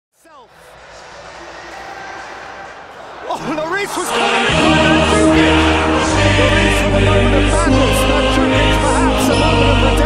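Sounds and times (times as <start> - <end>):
stadium crowd noise: 0.1 - 7.3.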